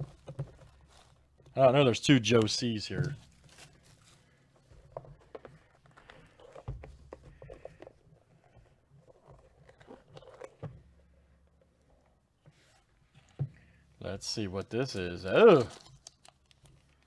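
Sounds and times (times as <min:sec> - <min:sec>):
cardboard box handling noise: 0:00.0 - 0:01.6, 0:02.3 - 0:11.1.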